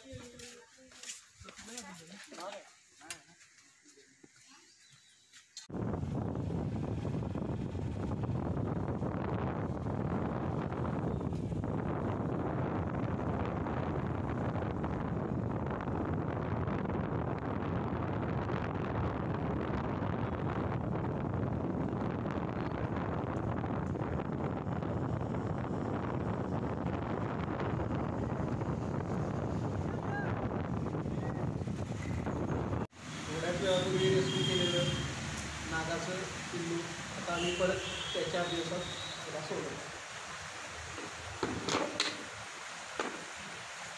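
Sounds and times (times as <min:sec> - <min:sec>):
wind rushing over microphone: 0:05.7 - 0:34.7
motorcycle running and road noise: 0:05.8 - 0:12.1.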